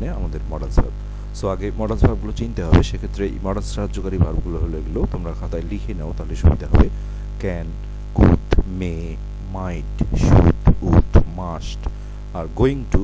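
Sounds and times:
low electrical mains hum: 0:00.0 - 0:13.0
person speaking: 0:00.0 - 0:13.0.

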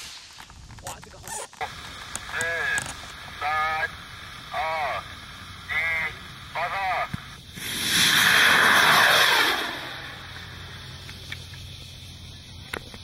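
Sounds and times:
rocket motor rushing hiss: 0:00.0 - 0:13.0.

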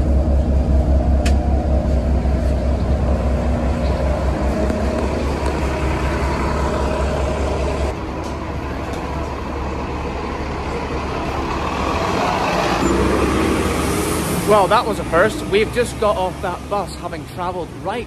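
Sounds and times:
bus engine rumbling: 0:00.0 - 0:18.0.

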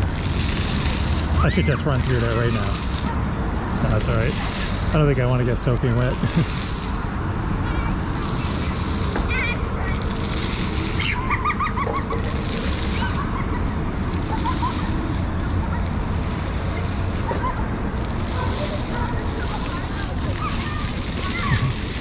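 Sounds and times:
fountain jets hissing and splashing: 0:00.0 - 0:22.0
faint children's voices: 0:01.4 - 0:22.0.

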